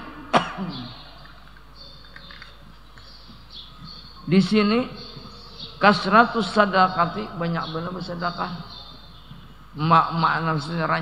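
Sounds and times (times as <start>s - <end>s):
man clearing his throat: 0.0s - 1.0s.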